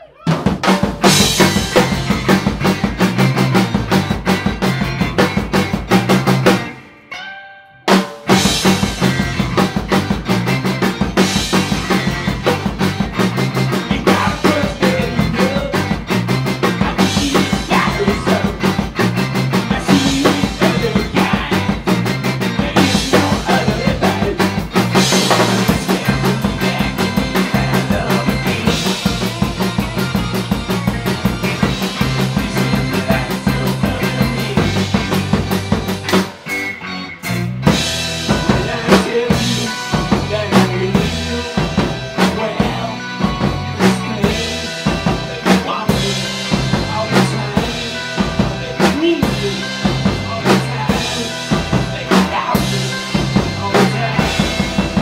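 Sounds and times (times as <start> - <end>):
rock band playing loud: 0.0 - 55.0.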